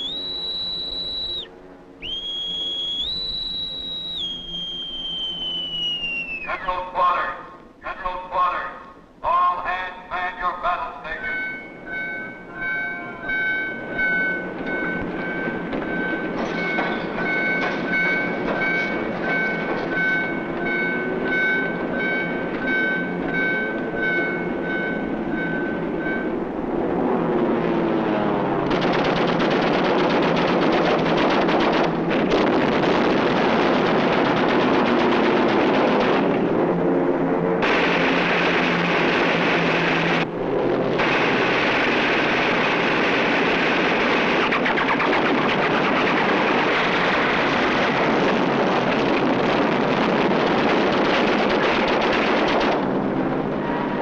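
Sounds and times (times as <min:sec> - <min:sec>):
heavy gunfire: 0:28.7 - 0:36.5, 0:37.6 - 0:40.2, 0:41.0 - 0:52.9.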